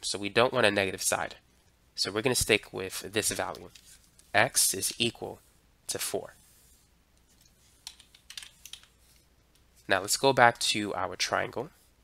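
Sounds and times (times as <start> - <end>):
keystroke clicks: 7.8 - 9.0.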